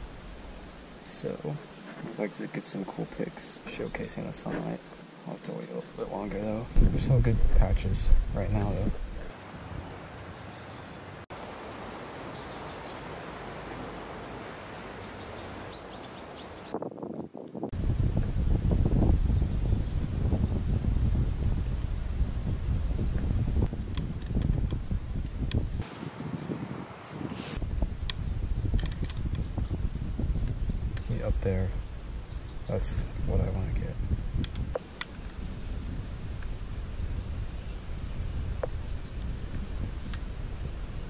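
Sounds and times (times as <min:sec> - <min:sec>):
wind in leaves: 0:00.0 - 0:41.0
wind buffeting microphone: 0:06.0 - 0:10.4, 0:12.6 - 0:41.0.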